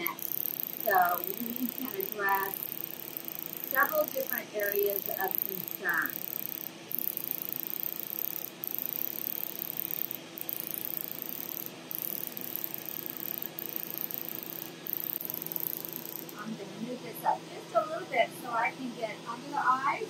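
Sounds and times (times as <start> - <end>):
laser machine hiss and hum: 0.0 - 16.5
faint high whine: 0.0 - 16.6.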